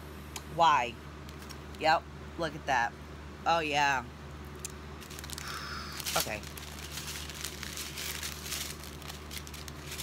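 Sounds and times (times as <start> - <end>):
low steady hum: 0.0 - 10.0
plastic bags crinkling: 5.0 - 10.0.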